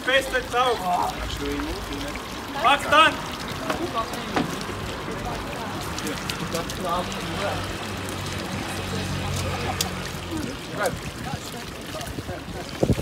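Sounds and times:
chatter and laughter: 0.0 - 13.0
fountain water running into trough: 0.0 - 13.0.

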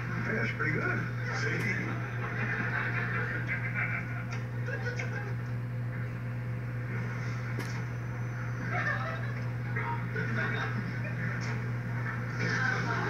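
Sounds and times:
sitcom soundtrack from tv: 0.0 - 13.0
steady low hum: 0.0 - 13.0.

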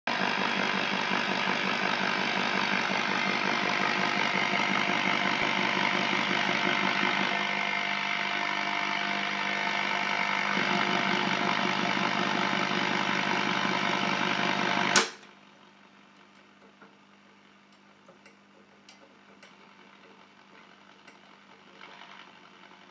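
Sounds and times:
radio static with hum: 0.2 - 15.0.

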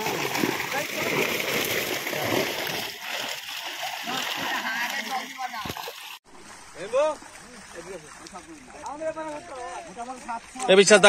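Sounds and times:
fish splashing in a net: 0.0 - 10.9.

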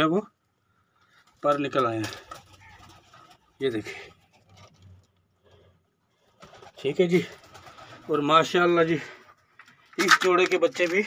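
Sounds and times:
man speaking: 10.0 - 11.0.

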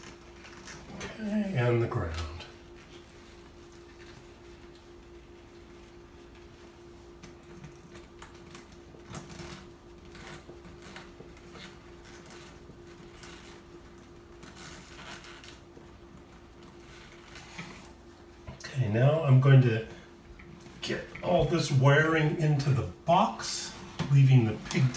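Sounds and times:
steady low hum: 0.0 - 24.9.

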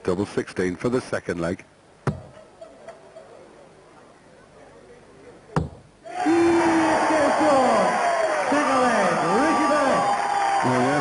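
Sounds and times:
crowd cheering and chanting: 6.1 - 11.0.

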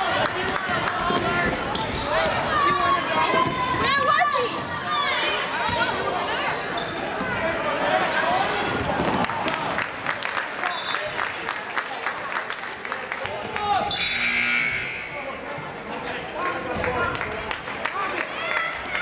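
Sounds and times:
spectators' voices and shouts: 0.0 - 19.0
sneakers squeaking on hardwood: 5.7 - 7.3.

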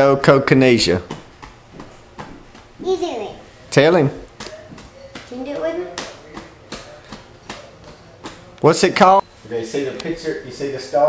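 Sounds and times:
hands patting on thighs: 4.3 - 8.6.

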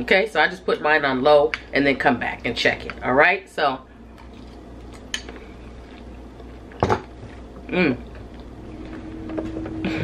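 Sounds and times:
person humming mmm: 7.7 - 8.1.

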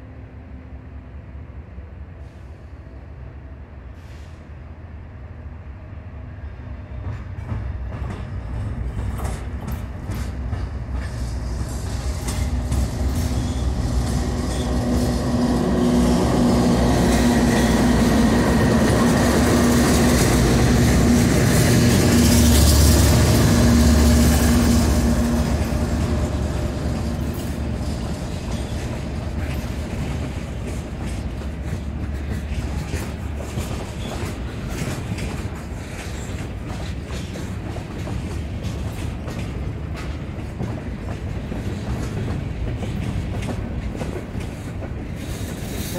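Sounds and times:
diesel locomotive engines: 0.0 - 45.9
freight cars rumbling and clattering: 7.0 - 45.9.

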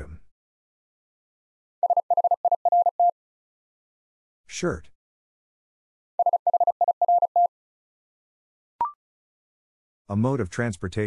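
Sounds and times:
morse code tone: 1.8 - 3.1, 6.2 - 7.5.

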